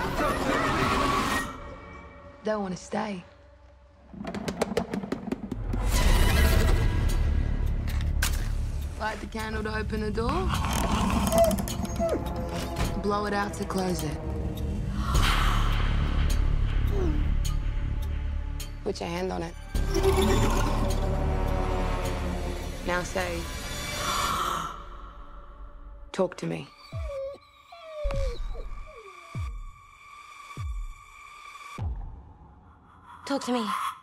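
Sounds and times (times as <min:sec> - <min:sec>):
low droning trailer music: 0:00.0 - 0:34.0.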